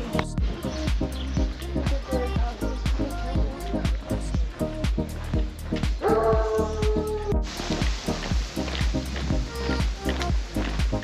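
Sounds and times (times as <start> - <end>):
music with beat and bass: 0.0 - 11.0.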